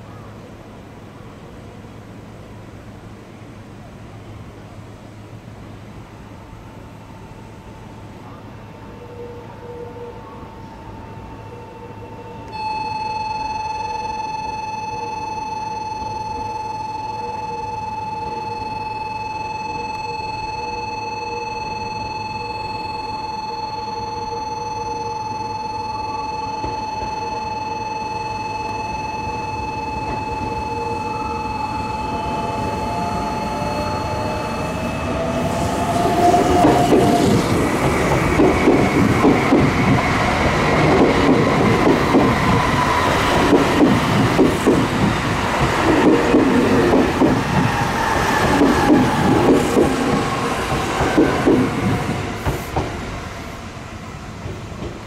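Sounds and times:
electric train motor whine: 8.8 - 53.8
train rumble: 30.0 - 55.0.

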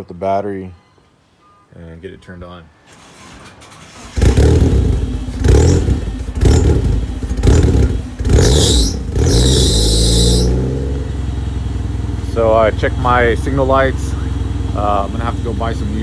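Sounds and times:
car engine starting and revving: 2.9 - 16.0.

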